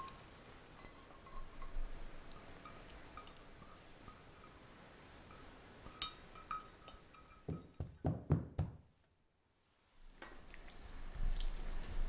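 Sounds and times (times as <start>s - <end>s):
spatula clinking against pot: 5.3s - 7.8s.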